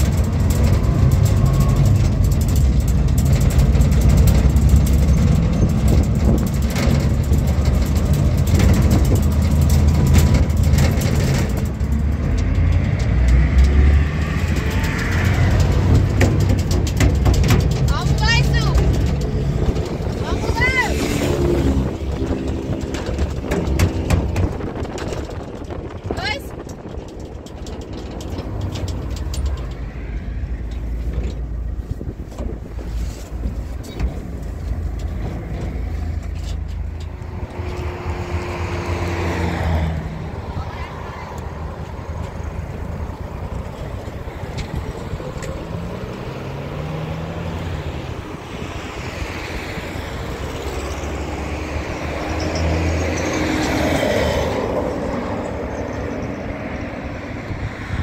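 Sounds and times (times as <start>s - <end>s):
pickup truck engine: 0.0s - 58.0s
road rumble: 0.0s - 58.0s.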